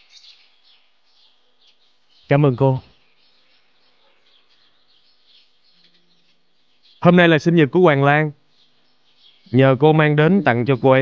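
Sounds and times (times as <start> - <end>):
faint high chirping: 0.0 - 11.0.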